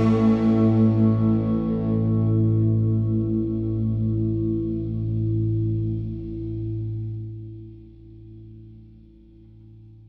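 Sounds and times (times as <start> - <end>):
distorted electric guitar chord: 0.0 - 4.0.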